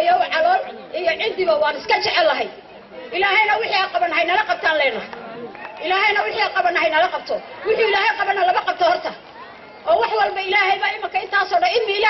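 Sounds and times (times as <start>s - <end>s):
woman speaking into a microphone: 0.0s - 5.2s, 5.8s - 12.0s.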